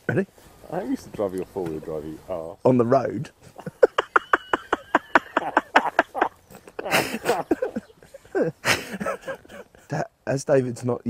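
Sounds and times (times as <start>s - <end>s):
man laughing heartily: 3.4s - 9.9s.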